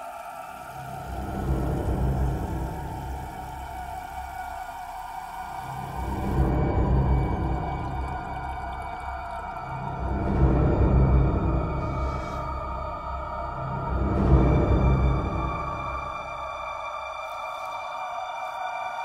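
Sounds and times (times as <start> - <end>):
eerie high drone: 0.0 - 19.0.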